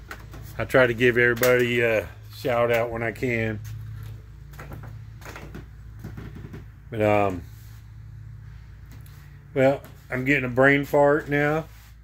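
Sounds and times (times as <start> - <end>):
steady low hum: 0.0 - 12.0
soft footsteps: 3.5 - 12.0.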